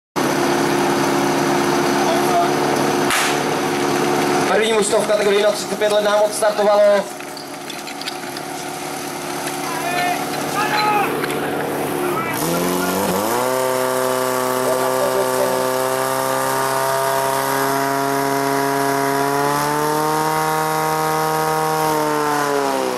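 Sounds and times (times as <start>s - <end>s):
pump engine revving: 0.2s - 22.9s
people shouting: 9.6s - 13.0s.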